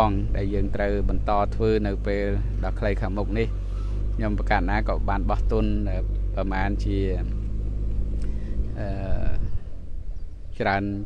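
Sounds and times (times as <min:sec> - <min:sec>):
man speaking: 0:00.0 - 0:03.6, 0:04.2 - 0:07.4, 0:08.7 - 0:09.6, 0:10.6 - 0:11.0
diesel engine drone: 0:00.0 - 0:11.0.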